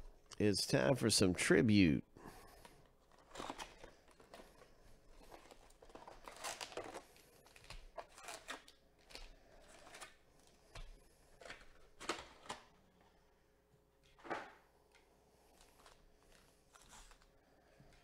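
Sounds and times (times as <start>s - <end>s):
foil packs rustling and crinkling: 2.6s - 10.5s.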